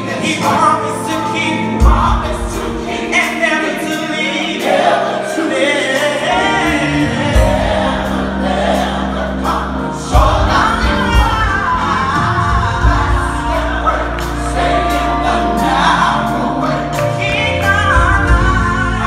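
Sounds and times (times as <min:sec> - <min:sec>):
gospel choir singing: 0:00.0 - 0:19.0
instrumental accompaniment: 0:00.0 - 0:19.0.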